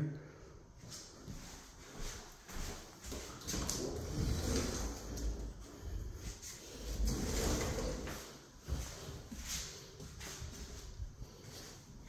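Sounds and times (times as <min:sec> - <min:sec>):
footsteps on laminate floor: 0:00.8 - 0:12.0.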